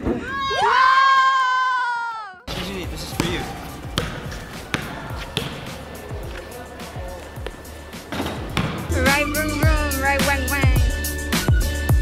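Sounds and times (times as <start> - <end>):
basketball bouncing on hard court: 2.5 - 6.5, 7.4 - 8.9
faint voices: 2.6 - 8.1.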